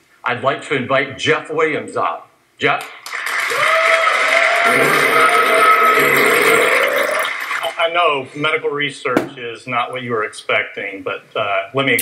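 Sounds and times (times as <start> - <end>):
audience applauding: 3.0 - 7.8.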